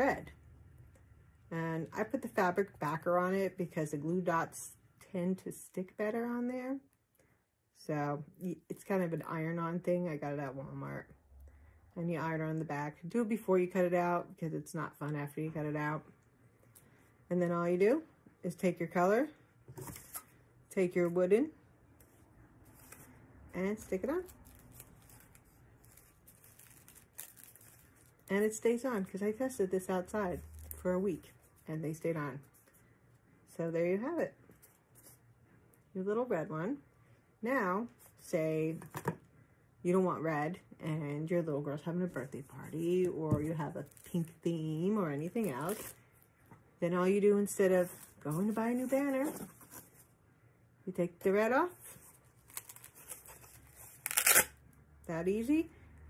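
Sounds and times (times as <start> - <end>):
rustling: 22.0 - 23.2, 23.8 - 28.4
velcro ripping: 24.0 - 28.3, 45.4 - 46.0, 52.4 - 54.6.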